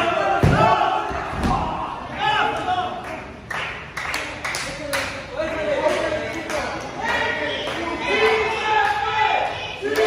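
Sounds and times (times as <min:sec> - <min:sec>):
people shouting: 0:00.0 - 0:02.8, 0:07.1 - 0:10.0.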